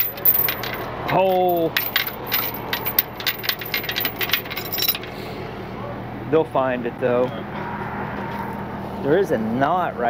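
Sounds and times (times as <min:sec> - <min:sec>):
metallic clicking and clinking: 0:00.0 - 0:05.1.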